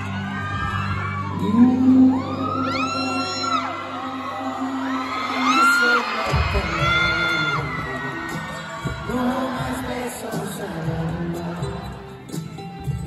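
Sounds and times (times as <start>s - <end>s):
soft musical accompaniment: 0.0s - 13.0s
man singing long sliding notes: 1.2s - 12.2s.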